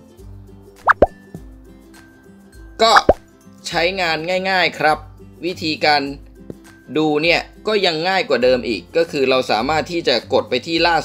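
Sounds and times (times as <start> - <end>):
soft background music: 0.0 - 11.0
cartoon plop sound effect: 0.8 - 1.2, 2.9 - 3.2.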